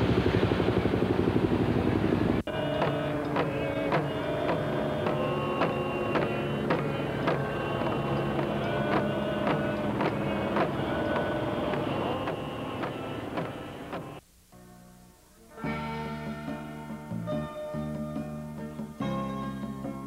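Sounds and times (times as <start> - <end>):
voices chanting long notes: 2.4 - 14.2
hand-held fan drums beaten: 2.5 - 14.2.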